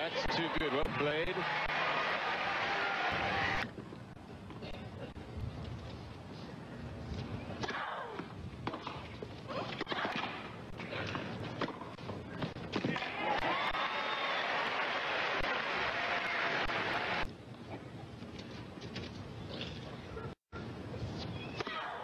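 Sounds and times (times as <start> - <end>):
crowd applauding and cheering: 1.1 - 3.6, 13.2 - 17.3.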